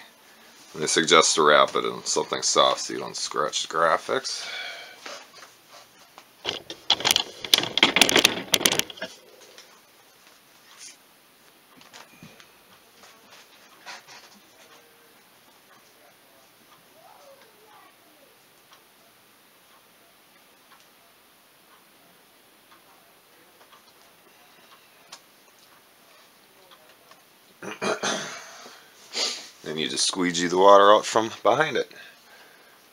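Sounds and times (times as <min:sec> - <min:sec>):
vinyl sheet crinkling and rustling: 0:05.0 - 0:14.9.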